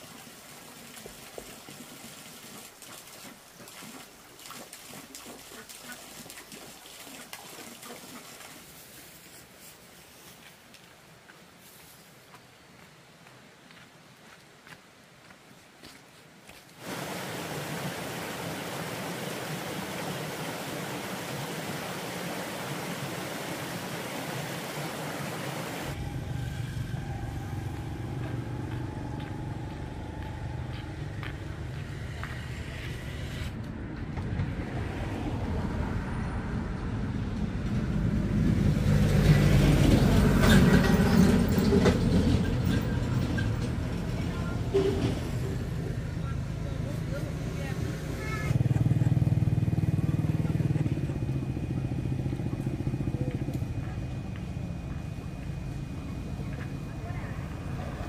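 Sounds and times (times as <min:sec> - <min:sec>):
stream running over rocks: 0:00.0 - 0:26.1
road traffic: 0:16.8 - 0:58.0
vehicle passing: 0:25.7 - 0:58.0.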